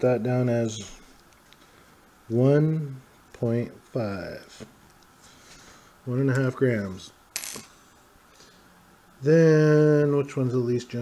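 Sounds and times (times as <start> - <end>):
ring clinking on wooden table: 7.4 - 7.7.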